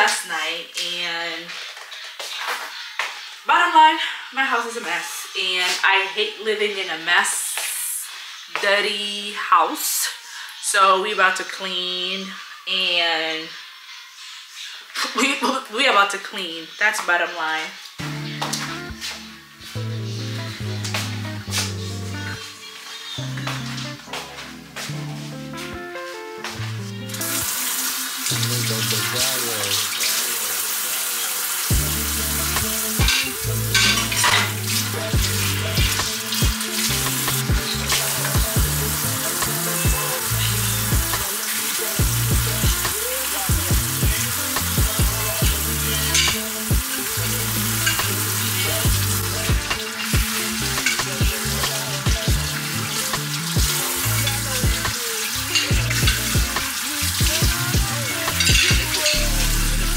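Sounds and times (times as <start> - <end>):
faucet running onto dishes: 27.1 - 59.9
dishes clinking: 33.0 - 34.6, 58.3 - 59.2.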